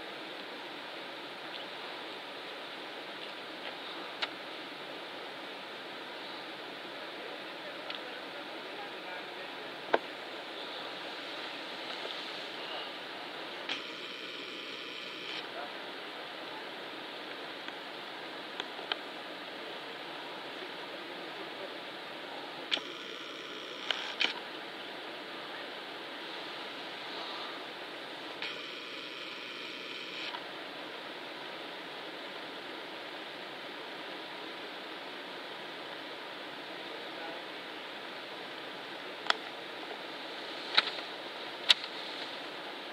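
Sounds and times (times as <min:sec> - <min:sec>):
background hiss: 0:00.0 - 0:42.9
faint whirring tone: 0:00.0 - 0:42.9
sharp clicks: 0:40.7 - 0:41.0.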